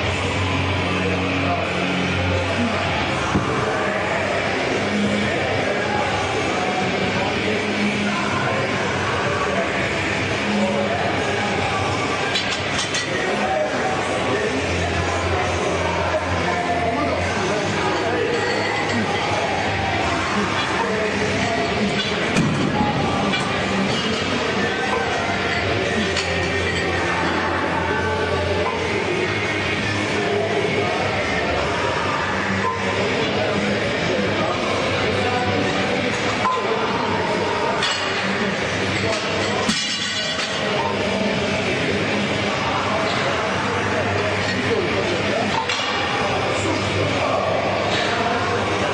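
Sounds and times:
gym background noise: 0.0 - 48.9
indistinct voices: 0.0 - 48.9.

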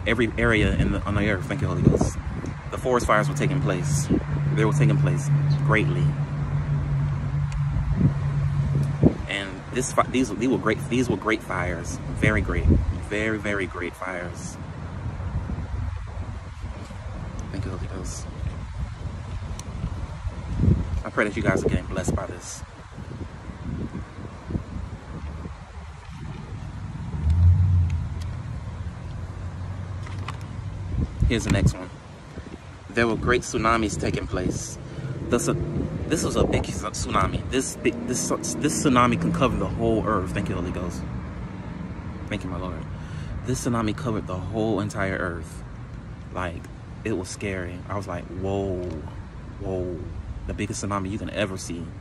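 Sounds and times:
vehicle engine rumble: 0.0 - 52.0.

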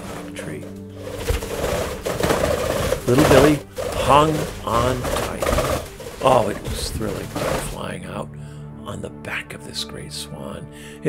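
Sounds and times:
paper page rustling: 0.0 - 7.9.

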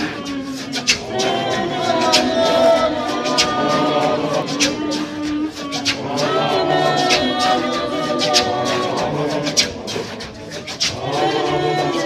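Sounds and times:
congregation singing a hymn: 0.0 - 12.0
crowd noise: 0.0 - 12.0
sharp hits on a steady beat: 0.0 - 12.0.

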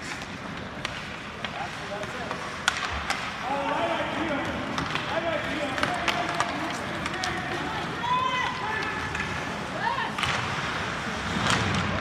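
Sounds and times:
hockey sticks clacking on puck: 0.0 - 12.0.

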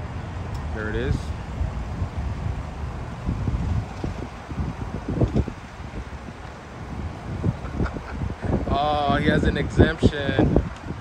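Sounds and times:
wind buffeting a microphone: 0.0 - 11.0.

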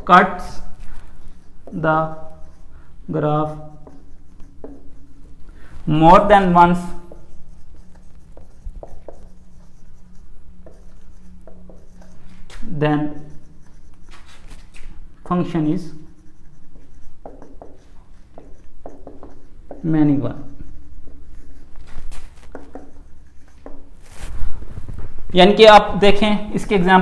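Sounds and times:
marker writing on whiteboard: 0.0 - 27.0.

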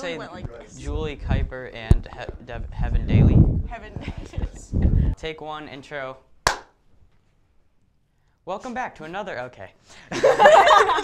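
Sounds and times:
sharp hand clap: 6.5 - 6.8.

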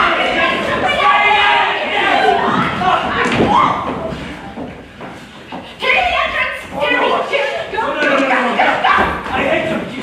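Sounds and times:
actors scuffling: 0.0 - 10.0.

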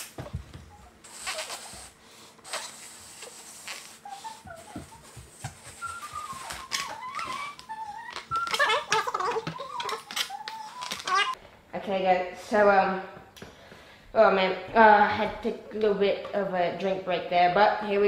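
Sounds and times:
squeaky stretching rubber balloon: 0.8 - 11.4
breath puffs into balloon: 1.0 - 4.5.

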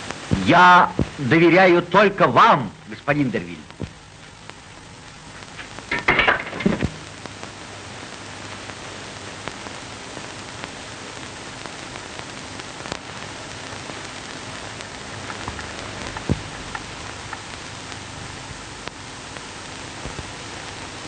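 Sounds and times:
film soundtrack hiss and crackle: 0.0 - 21.0
clicks and pops: 5.4 - 7.4, 13.8 - 18.0.

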